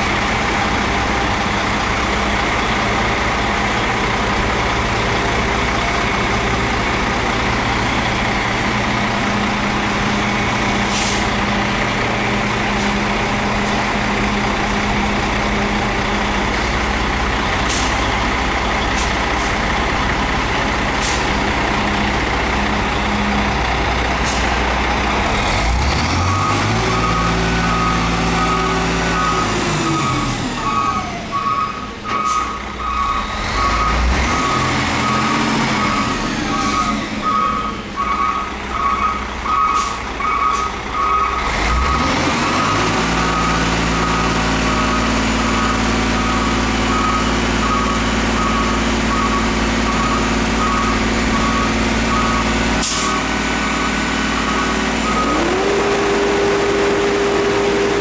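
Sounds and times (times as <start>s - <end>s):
diesel truck engine running: 0.0s - 58.0s
reversing alarm beeping: 26.0s - 57.8s.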